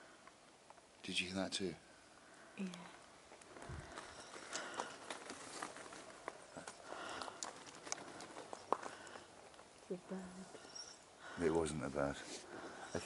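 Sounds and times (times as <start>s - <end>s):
faint footsteps: 2.8s - 10.8s.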